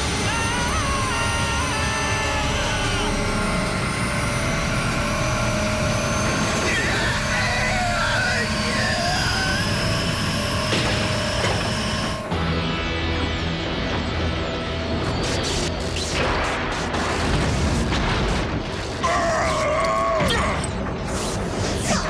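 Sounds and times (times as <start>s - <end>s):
wavering pitched cries: 0.0s - 12.3s
dramatic music: 0.0s - 19.4s.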